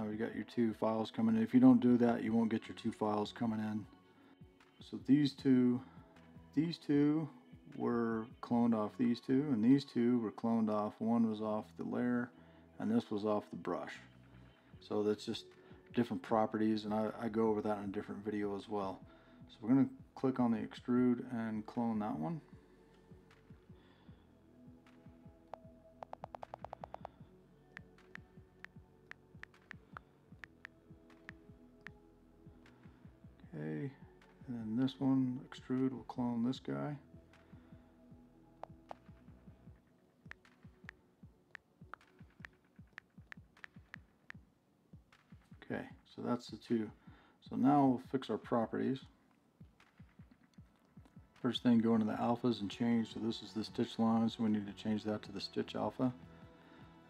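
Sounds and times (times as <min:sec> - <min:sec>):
faint background music: 0:00.0 - 0:57.0
on-screen keyboard clicks: 0:25.5 - 0:27.2.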